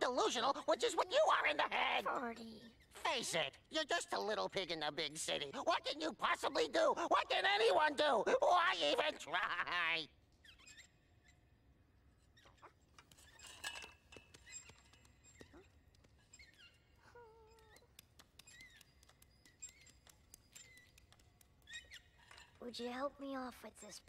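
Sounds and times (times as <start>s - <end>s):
faint animal squeaks and chirps: 14.4s - 22.5s.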